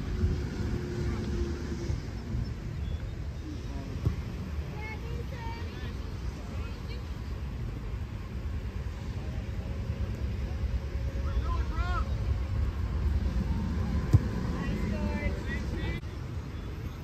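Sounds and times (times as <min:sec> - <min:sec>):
wind rumbling on microphone: 0:00.0 - 0:05.3
distant voices calling out: 0:08.8 - 0:17.0.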